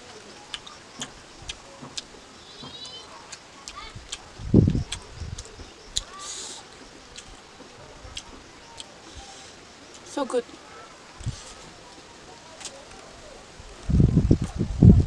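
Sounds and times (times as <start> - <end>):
chewing mouth sounds: 2.8 - 6.3.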